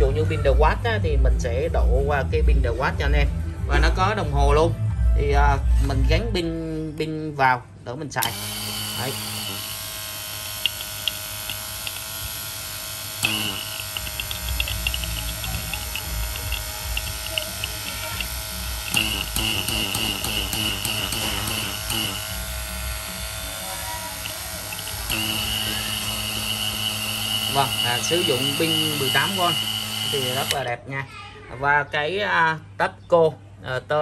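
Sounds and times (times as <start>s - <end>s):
vacuum pump motor whining: 8.2s - 30.7s.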